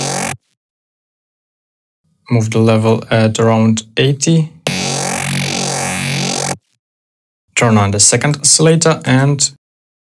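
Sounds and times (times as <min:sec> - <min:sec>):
synthesizer low bass note: 0:00.0 - 0:00.6, 0:04.7 - 0:06.8.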